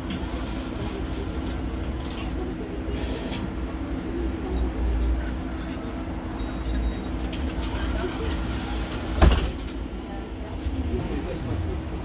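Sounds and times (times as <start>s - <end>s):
bus interior hum: 0.0s - 12.0s
faint passenger voices: 0.0s - 12.0s.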